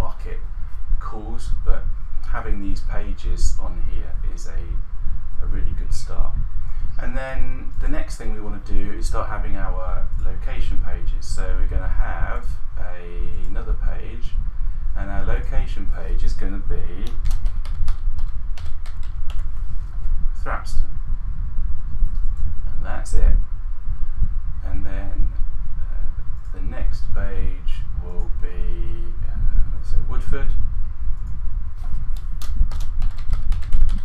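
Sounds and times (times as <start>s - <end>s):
low rumble: 0.0s - 34.0s
steady low hum: 0.0s - 34.0s
keyboard typing: 17.0s - 19.5s, 32.2s - 34.0s
keyboard typing clicks: 32.2s - 34.0s.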